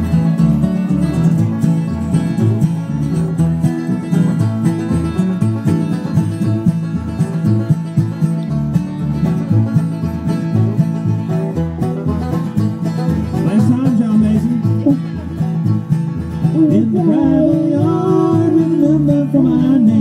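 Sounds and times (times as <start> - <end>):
bluegrass band playing: 0.0 - 20.0
strummed acoustic guitar: 0.0 - 20.0.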